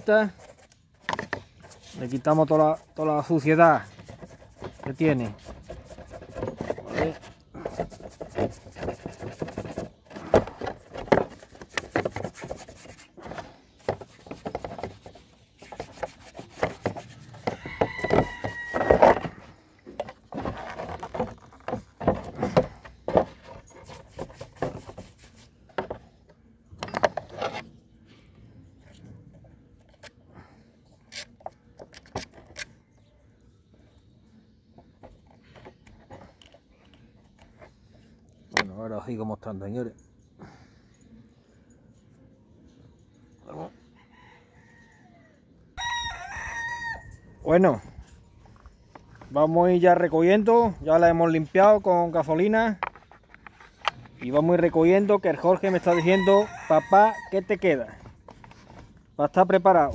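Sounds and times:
brush scrubbing metal: 1.6s - 10.0s, 11.3s - 17.6s, 23.3s - 25.6s.

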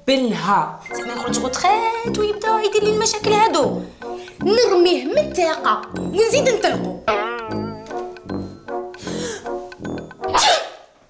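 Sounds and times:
light background music: 0.4s - 10.7s
breathy intake: 9.0s - 9.7s
woman sneezing: 10.3s - 10.8s.

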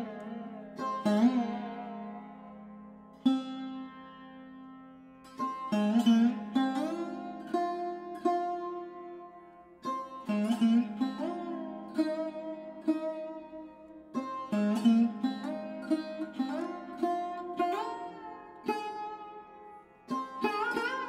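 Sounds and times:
plucked string instrument: 0.0s - 21.0s.

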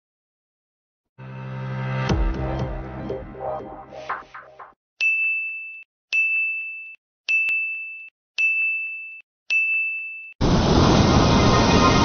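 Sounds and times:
loud rushing swell: 10.4s - 12.0s.

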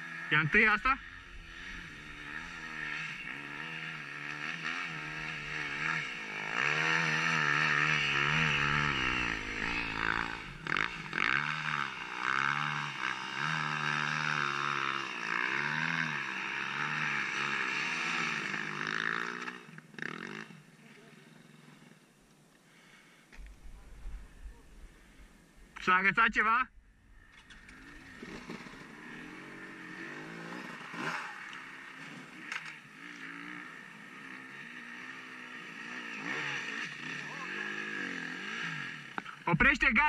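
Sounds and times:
dirt bike engine revving: 0.0s - 21.9s, 22.7s - 40.0s.

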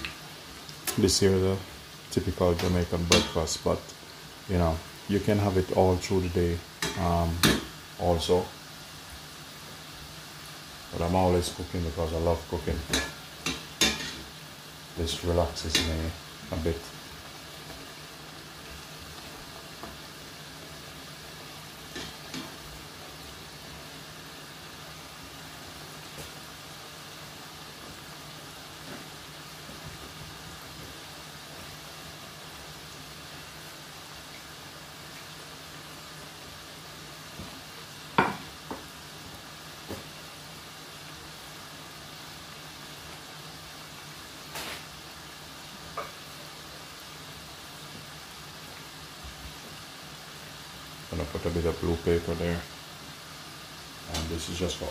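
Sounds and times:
dumplings sizzling in oil: 0.0s - 54.9s.

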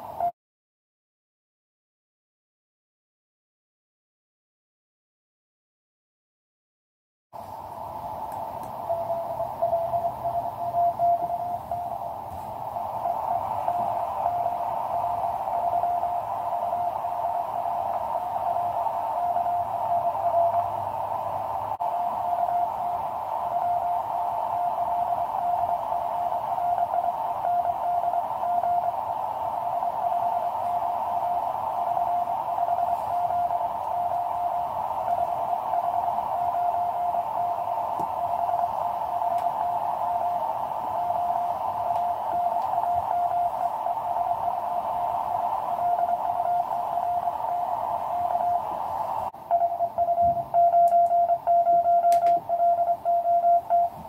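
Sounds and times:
radio band noise hiss: 7.4s - 54.0s
loud keyed sidetone: 8.8s - 20.8s, 21.8s - 29.0s, 29.6s - 40.4s, 41.0s - 48.7s, 49.4s - 54.0s
morse code keyed tone: 8.8s - 20.8s, 21.8s - 29.0s, 29.6s - 40.4s, 41.0s - 48.7s, 49.4s - 54.0s.

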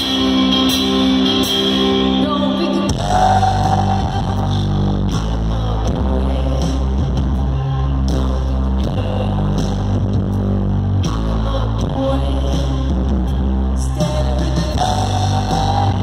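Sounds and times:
electric guitar: 0.0s - 16.0s
live rock band playing: 0.0s - 16.0s.

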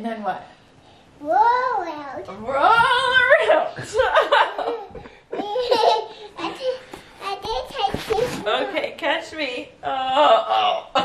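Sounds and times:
people laughing: 3.4s - 6.0s.

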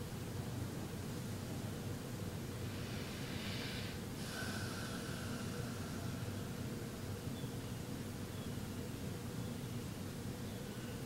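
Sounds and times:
low room hum: 0.0s - 11.0s
person breathing through nose: 2.6s - 6.7s.

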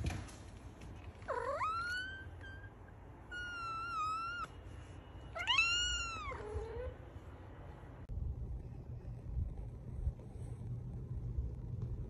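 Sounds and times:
cat meowing: 3.3s - 4.5s, 5.4s - 7.0s.

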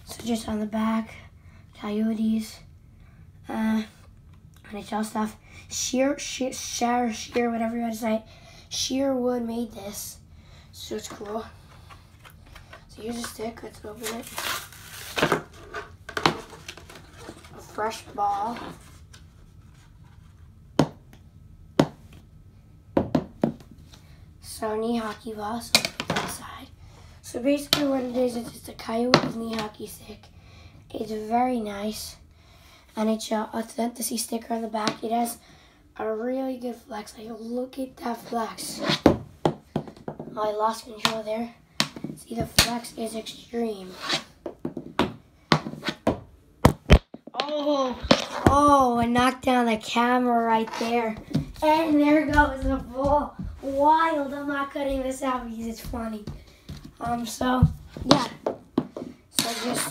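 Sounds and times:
ball bouncing on wooden floor: 20.8s - 21.0s, 21.8s - 22.0s, 23.0s - 23.7s, 44.4s - 49.4s, 54.9s - 59.5s.

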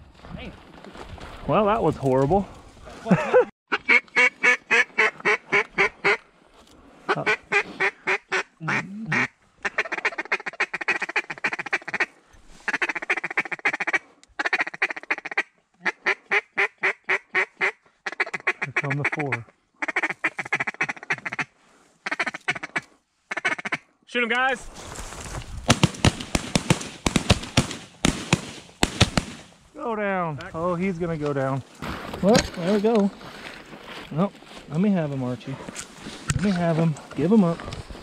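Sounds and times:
duck call feed chatter: 3.7s - 6.2s, 7.1s - 12.1s, 12.7s - 23.8s
duck call quacks: 3.7s - 6.2s, 7.1s - 12.1s, 12.7s - 23.9s.

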